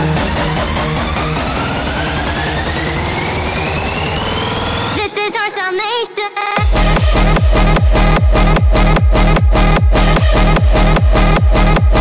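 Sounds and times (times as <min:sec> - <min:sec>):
synth sweep rising in pitch: 0:00.0 - 0:05.0
fast pulsing bass: 0:00.0 - 0:05.2, 0:06.6 - 0:12.0.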